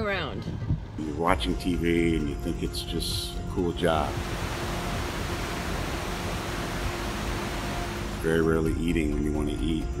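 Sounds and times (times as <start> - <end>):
hurricane wind and rain: 4.0 - 8.3.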